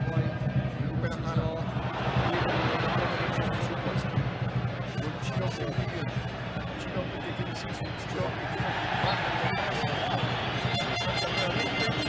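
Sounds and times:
stadium crowd noise: 0.0 - 12.0.

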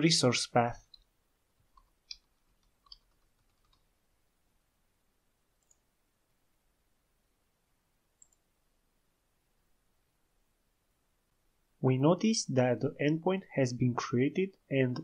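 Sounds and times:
keyboard and mouse clicks: 1.7 - 3.9, 5.6 - 5.9, 8.2 - 8.4.

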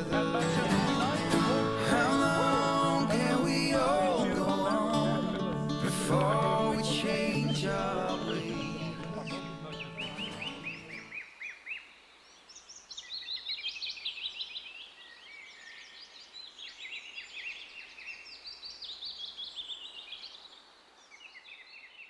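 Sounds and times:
music: 0.0 - 11.1
small birds chirping: 0.8 - 22.0.

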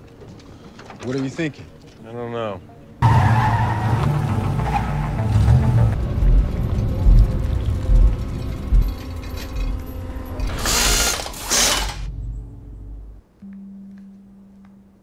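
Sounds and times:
low thuds: 5.9 - 9.6
grinding ratcheting texture: 7.1 - 12.1.

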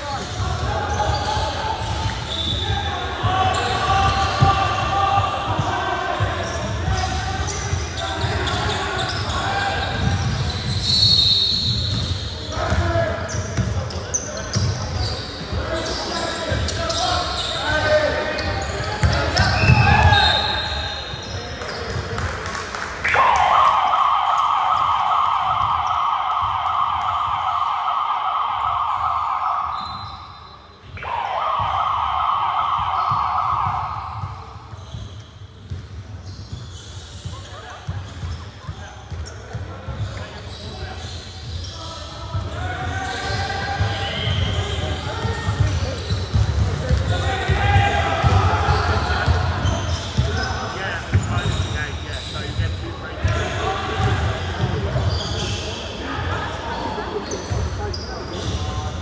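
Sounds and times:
players calling out: 0.0 - 22.4, 23.0 - 35.8, 36.4 - 59.0.

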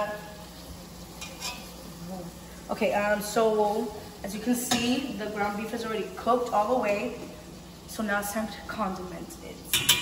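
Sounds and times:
meat sizzling in a frying pan: 0.0 - 10.0
spatula scraping pan: 1.1 - 1.9.

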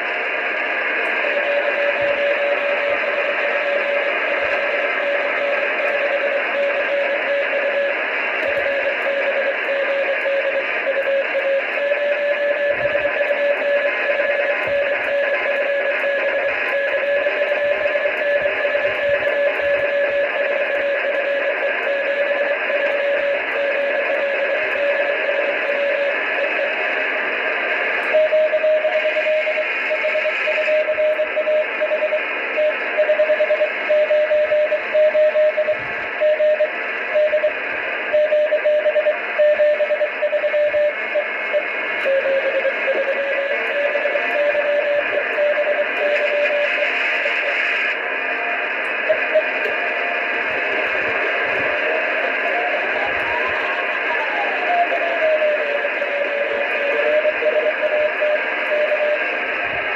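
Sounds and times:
receiver hiss: 0.0 - 59.9
morse code tone: 1.2 - 26.8, 28.0 - 48.0, 48.8 - 59.4.

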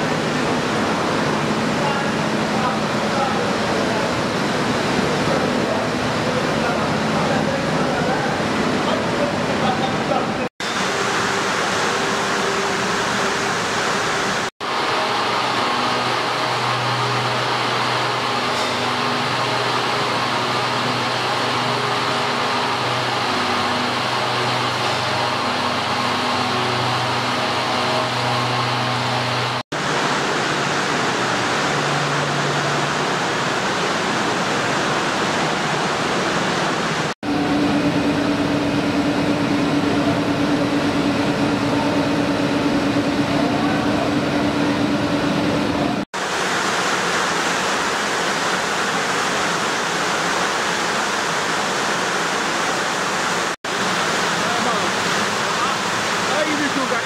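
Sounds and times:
textile machinery running: 0.0 - 57.0.

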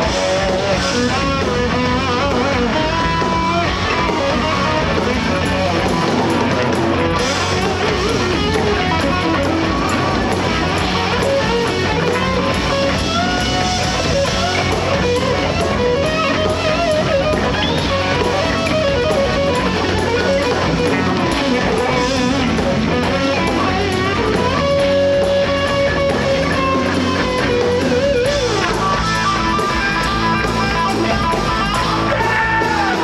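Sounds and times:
bass guitar: 0.0 - 33.0
drums: 0.0 - 33.0
electric guitar lead: 0.0 - 33.0.

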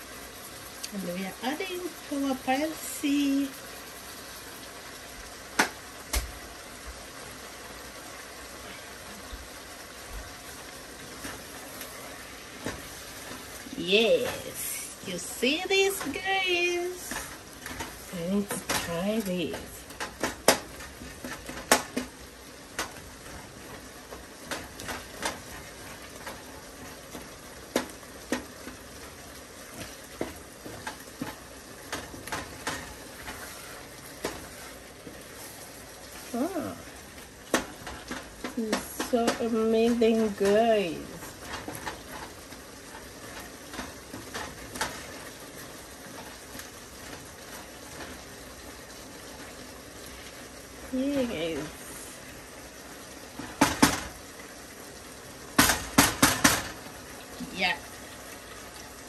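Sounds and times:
food sizzling: 0.0 - 59.0.

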